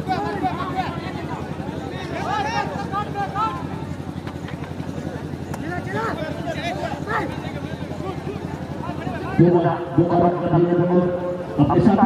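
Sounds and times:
low mechanical drone: 0.0 - 12.0
man's voice: 9.2 - 12.0.

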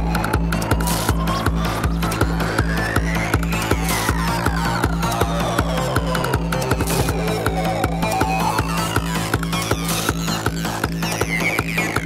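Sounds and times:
held bass line: 0.0 - 12.0.

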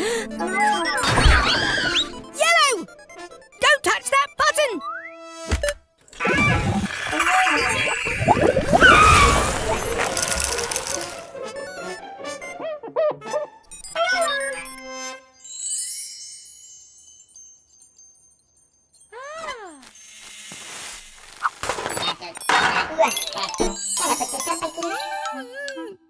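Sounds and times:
tinkling ice crackle: 6.9 - 11.3, 15.3 - 25.6
rushing hiss of spraying air: 20.0 - 21.4.

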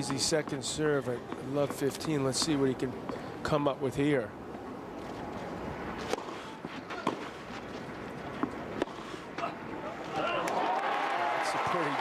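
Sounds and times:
rackets hitting tennis ball: 6.0 - 9.5
crowd cheering and shouting: 10.1 - 12.0.

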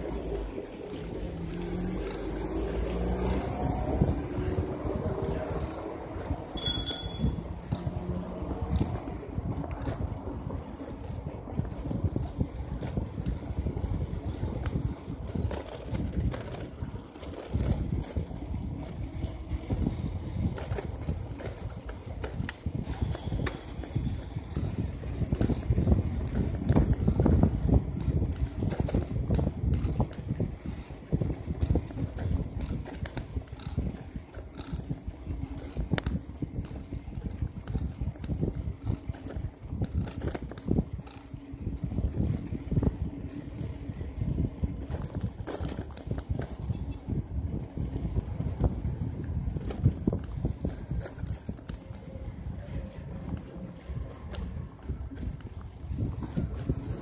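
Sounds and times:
low rumbling and rustling: 0.0 - 57.0
bright metallic ring: 6.6 - 7.4.

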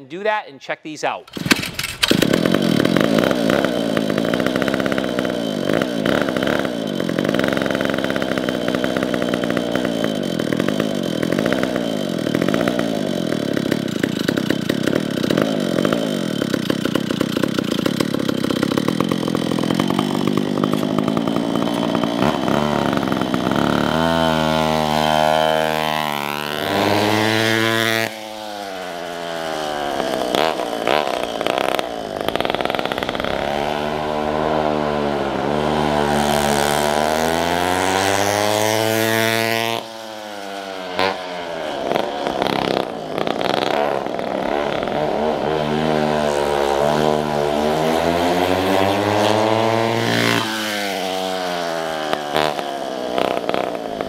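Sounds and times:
go-kart engine revving: 1.2 - 54.0.

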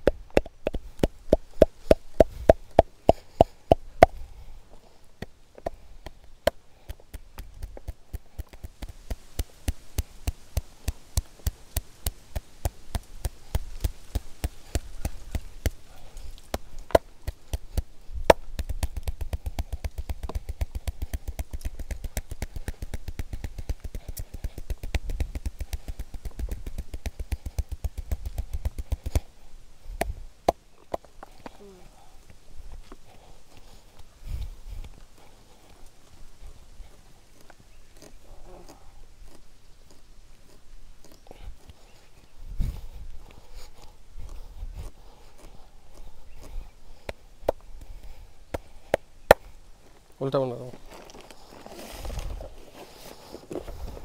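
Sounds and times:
hands slapping bare skin: 0.0 - 4.2, 5.2 - 29.3, 46.4 - 49.6.

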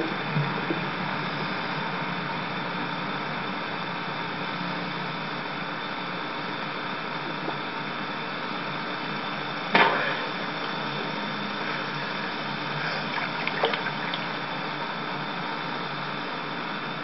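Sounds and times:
steady hiss: 0.0 - 17.0
faint low hum: 6.9 - 17.0.

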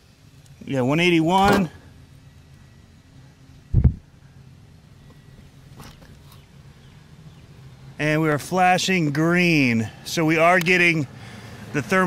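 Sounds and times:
short low thump: 3.7 - 4.0.

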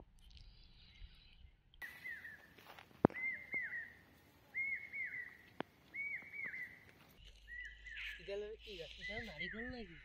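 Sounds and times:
bird calling whistled notes: 1.8 - 10.0.

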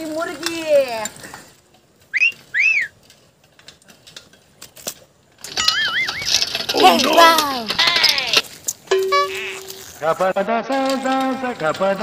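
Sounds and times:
wolf whistle: 2.1 - 3.0.

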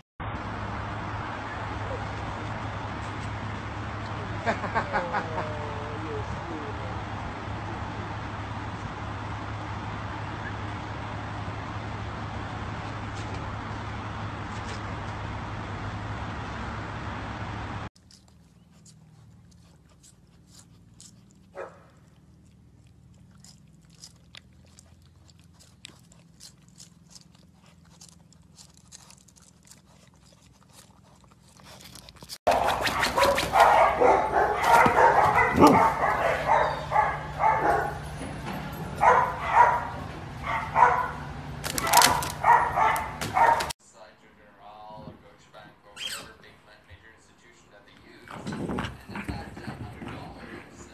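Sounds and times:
husky yowling and barking: 32.5 - 38.2, 38.9 - 43.8.

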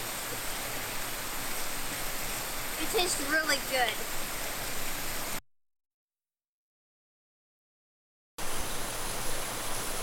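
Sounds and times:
creek and waterfall rushing: 0.0 - 5.4, 8.4 - 10.0.

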